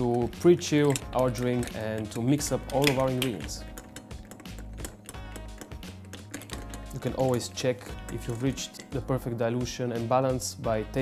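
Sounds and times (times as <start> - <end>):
ice cubes clinking in glass: 0.0 - 9.1
background music: 0.0 - 11.0.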